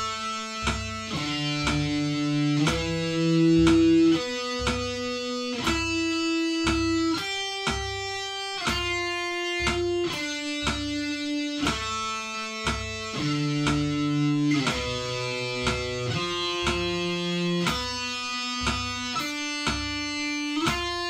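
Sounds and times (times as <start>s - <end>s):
electric guitar picked notes: 0.0s - 21.0s.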